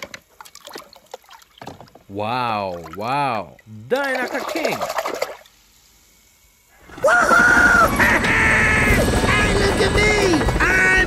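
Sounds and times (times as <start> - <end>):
toy splashing in water: 0.0 - 2.0, 3.6 - 5.5
rising and falling cries: 6.7 - 11.0.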